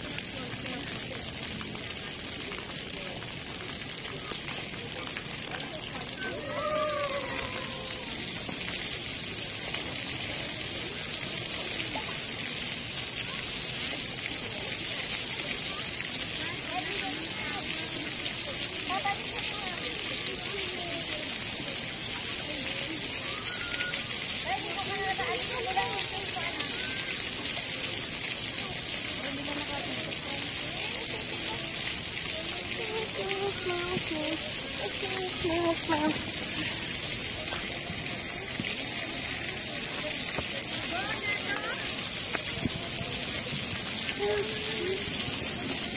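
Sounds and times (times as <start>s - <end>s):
children's voices: 0.0s - 8.8s, 9.8s - 45.9s
water jets spraying: 0.0s - 45.9s.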